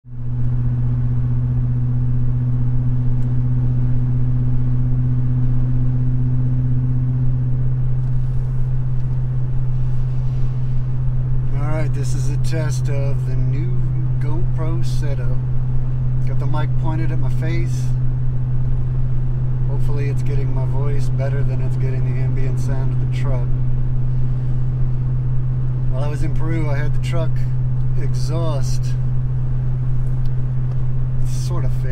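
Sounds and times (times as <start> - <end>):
truck exhaust low hum: 0.0 - 31.9
road noise: 0.1 - 31.9.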